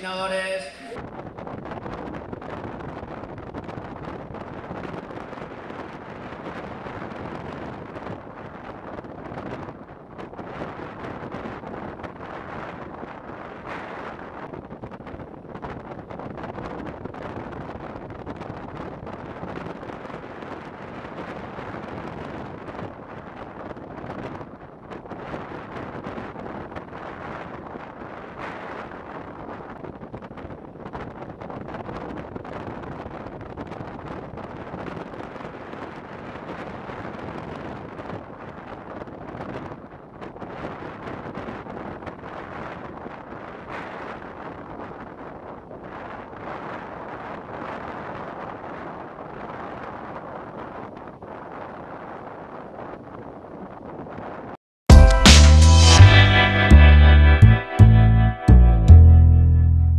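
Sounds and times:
wind buffeting microphone: 0:00.0 - 0:54.6.

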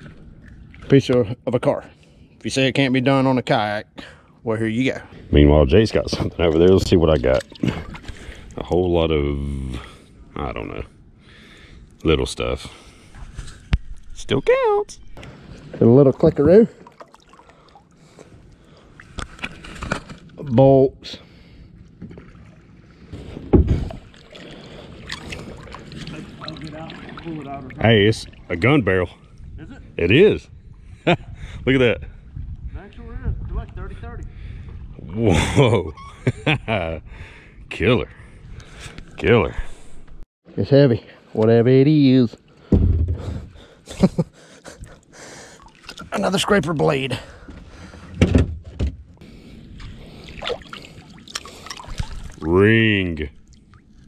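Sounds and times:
heavy thumps on plastic kayak: 0:42.7 - 0:43.6
rope being hauled out of water: 0:49.8 - 0:52.5.

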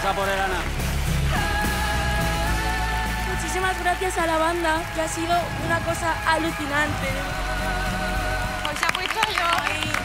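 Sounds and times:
audience cheering and applauding: 0:00.0 - 0:10.0.

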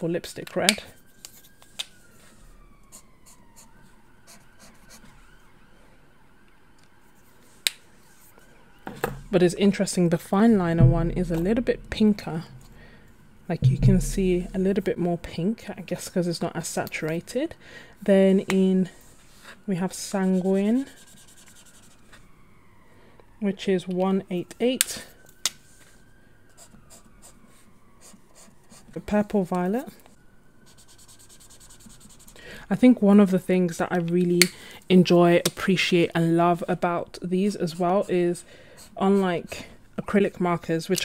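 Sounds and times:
high siren-like tone: 0:01.0 - 0:07.2, 0:07.9 - 0:15.0, 0:19.6 - 0:31.5.

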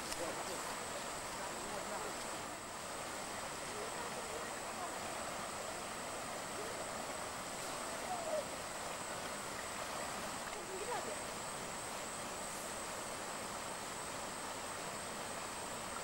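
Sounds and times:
river water rushing: 0:00.0 - 0:16.0.

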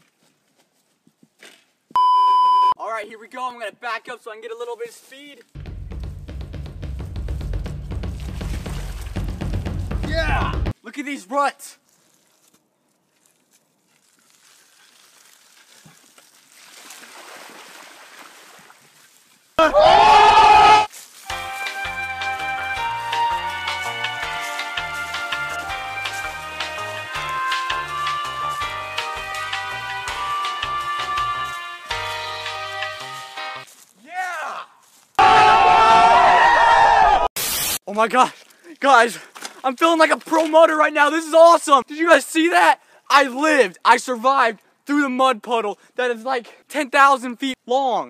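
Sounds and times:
music with steady beat: 0:05.6 - 0:10.7, 0:21.3 - 0:33.6
bicycle tyres splashing through mud: 0:07.2 - 0:10.1, 0:11.8 - 0:19.6, 0:20.9 - 0:21.8
teenagers shouting and cheering: 0:19.6 - 0:20.9, 0:34.1 - 0:37.3.

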